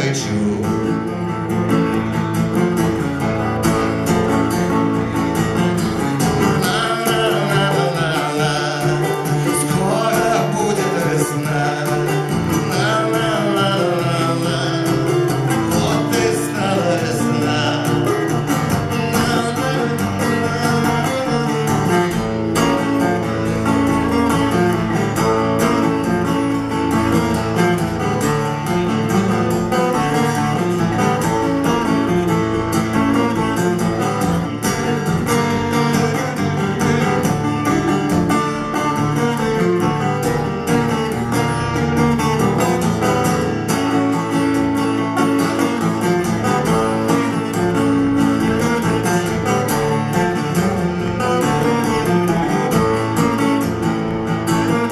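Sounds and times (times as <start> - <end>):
acoustic guitar strumming: 0.0 - 54.9.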